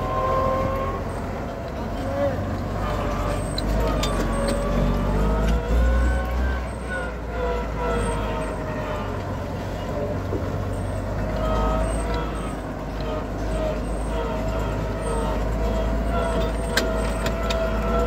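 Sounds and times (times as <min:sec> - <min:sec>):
tractor diesel engine rumbling: 0:00.0 - 0:18.0.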